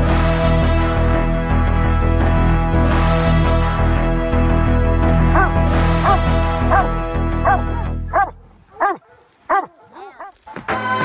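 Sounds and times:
background music: 0.0 - 11.0
hound barking: 5.3 - 10.7.

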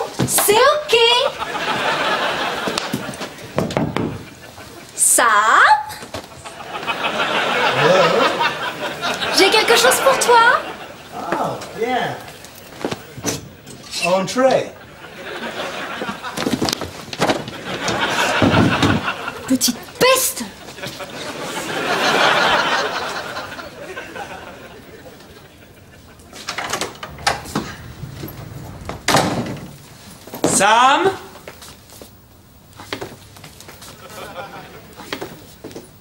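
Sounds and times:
door banging shut: 3.5 - 4.4, 17.2 - 19.2, 26.4 - 30.6.

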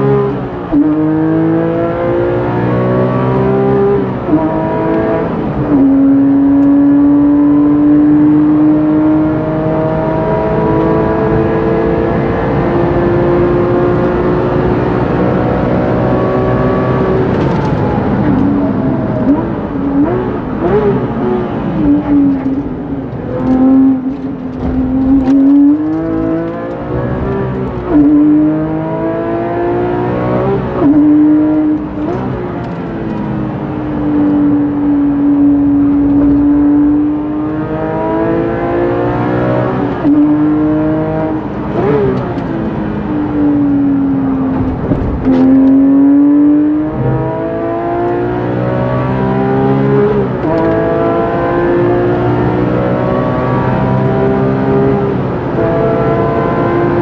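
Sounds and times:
car engine revving at full throttle: 0.0 - 57.0.

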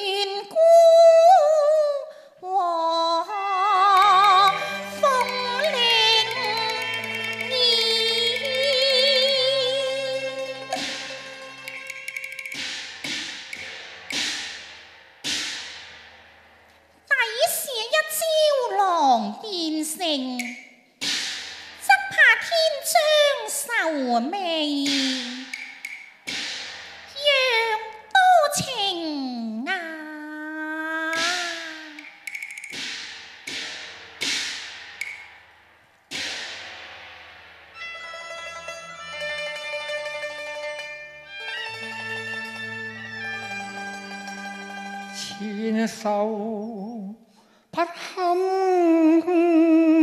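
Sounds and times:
opera percussion crashes: 4.0 - 17.6, 20.3 - 22.5, 24.8 - 28.7, 31.1 - 45.4.

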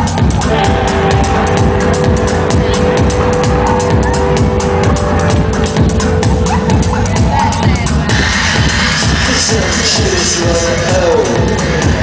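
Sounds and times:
electronic band through pa: 0.0 - 12.0
heavy bass and kick drum: 0.0 - 12.0.

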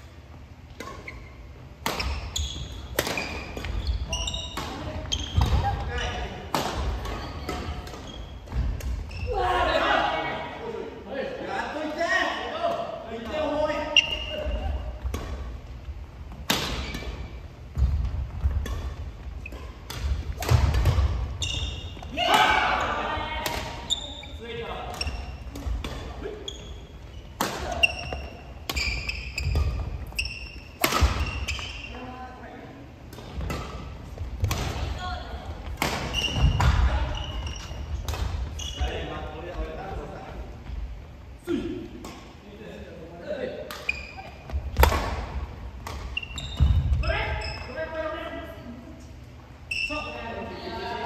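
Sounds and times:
shoes squeaking on wooden floor: 1.0 - 6.3, 21.3 - 22.1, 26.4 - 32.0, 36.0 - 39.2, 46.0 - 47.7
rackets striking shuttlecock: 27.3 - 31.7, 43.7 - 47.0.

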